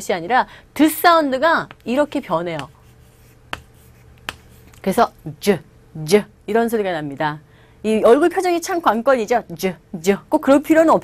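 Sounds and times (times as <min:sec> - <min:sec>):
chalk tapping on chalkboard: 0:01.6 - 0:04.8.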